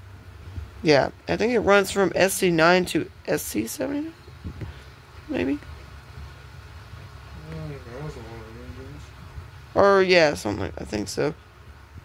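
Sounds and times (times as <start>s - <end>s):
room noise rumble: 0.0s - 12.0s.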